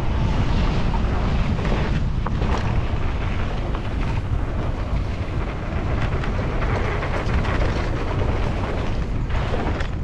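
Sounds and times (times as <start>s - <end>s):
wind buffeting microphone: 0.0s - 10.0s
bike rattles and clicks: 1.5s - 10.0s.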